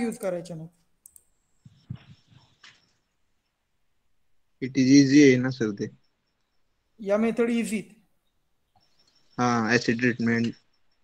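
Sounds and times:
person speaking: 0.0 - 0.9
sharp clicks: 1.0 - 3.0, 10.2 - 11.0.

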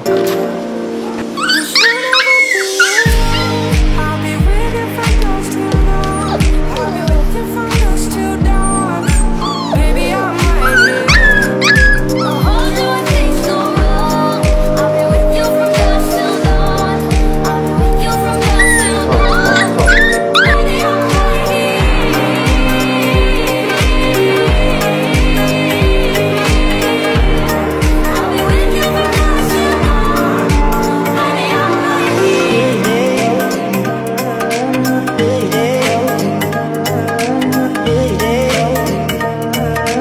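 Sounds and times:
background music: 0.0 - 40.0
puppy whimpering and yelping: 1.1 - 3.6, 6.0 - 7.2, 8.5 - 12.9, 18.3 - 20.9
deep steady drum beat: 3.1 - 11.4.

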